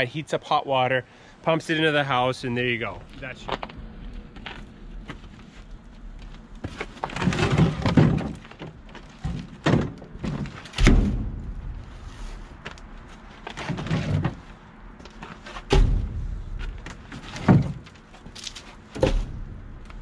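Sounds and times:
wooden logs thunking: 0:06.6 - 0:14.5, 0:15.1 - 0:20.0.

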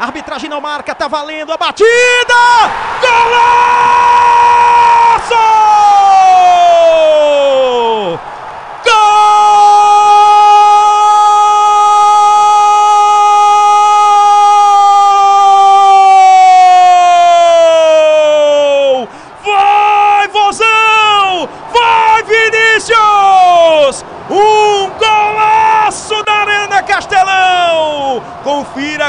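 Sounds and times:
commentator shouting goal cry: 0:00.0 - 0:08.2, 0:08.8 - 0:29.0.

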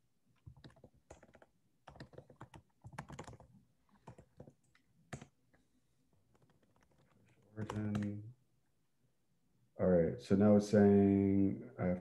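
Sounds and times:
keyboard typing clicks: 0:00.4 - 0:05.4, 0:06.3 - 0:08.2.

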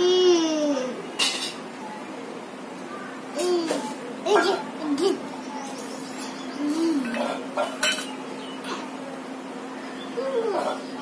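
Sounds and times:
metal bowl clinking on concrete: 0:07.0 - 0:08.2.

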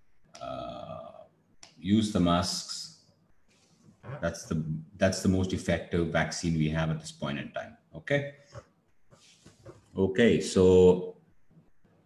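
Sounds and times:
faint room noise: 0:00.0 - 0:12.0
man speaking: 0:00.4 - 0:03.0, 0:04.1 - 0:08.6, 0:09.9 - 0:11.2.

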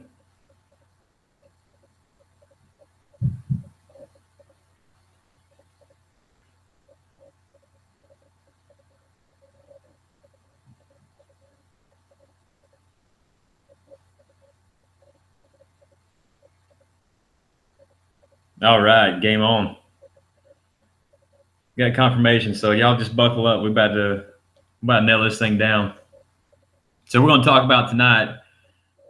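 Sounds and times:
faint ticks: 0:00.0 - 0:13.0, 0:13.6 - 0:17.0, 0:17.7 - 0:18.6, 0:19.8 - 0:21.6, 0:24.3 - 0:24.8, 0:25.9 - 0:27.2
faint low hum: 0:00.0 - 0:29.0
low double thump: 0:03.2 - 0:03.7.

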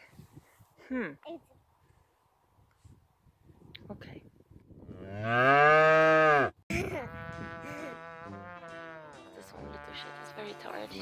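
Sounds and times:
cow mooing: 0:04.9 - 0:06.5
music with held notes: 0:07.5 - 0:11.0.

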